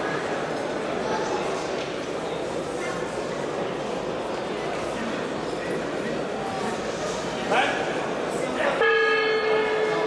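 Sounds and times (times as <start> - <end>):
horn held tone: 8.8 - 10.0.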